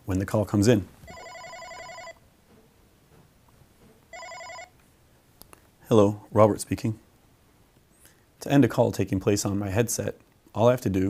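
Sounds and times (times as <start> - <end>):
electronic warbling phone ring: 1.1 - 2.2, 4.1 - 4.7.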